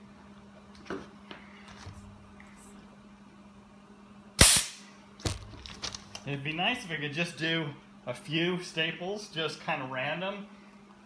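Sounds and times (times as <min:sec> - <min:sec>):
staple gun firing with hiss: 0:04.4 - 0:04.9.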